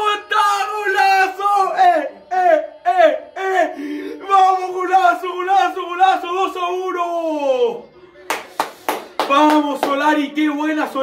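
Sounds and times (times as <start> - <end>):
young man yelling: 0.0 - 7.8
hand claps: 8.3 - 11.0.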